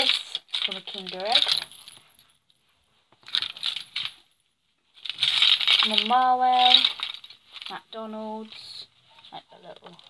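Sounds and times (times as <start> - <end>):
keys jingling: 3.2 - 4.4.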